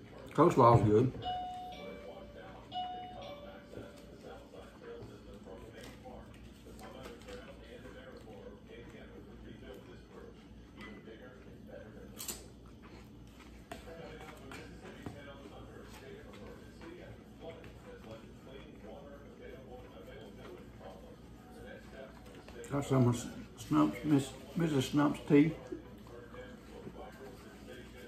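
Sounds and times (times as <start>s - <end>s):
low room hum: 0.0s - 28.0s
doorbell ding-dong chime: 1.2s - 3.6s.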